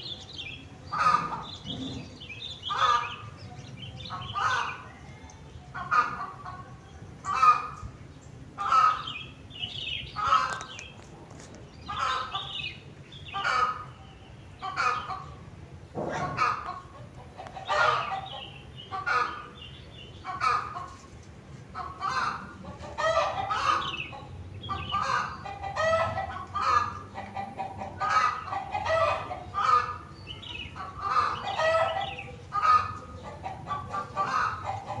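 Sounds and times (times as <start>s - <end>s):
chicken-like clucking calls: 0.9s - 3.2s, 16.0s - 19.6s, 20.2s - 21.1s, 21.7s - 35.0s.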